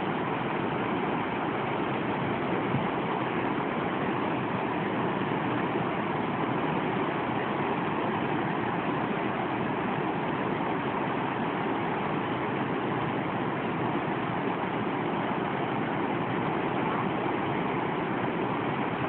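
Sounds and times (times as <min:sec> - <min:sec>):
water rushing through sluices: 0:00.0 - 0:19.0.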